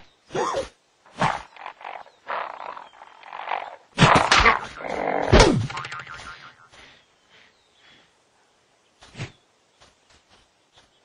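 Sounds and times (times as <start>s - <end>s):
cartoon hits: 4.0s - 6.4s.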